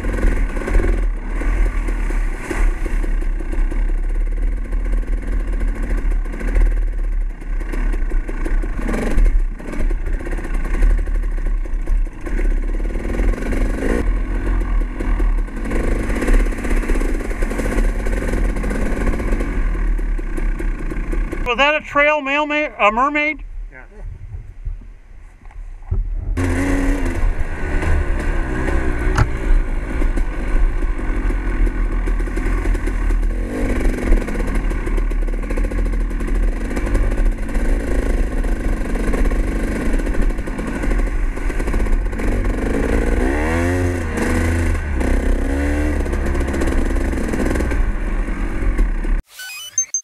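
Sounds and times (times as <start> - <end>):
dirt bike engine revving: 0.0 - 23.2, 26.3 - 49.0.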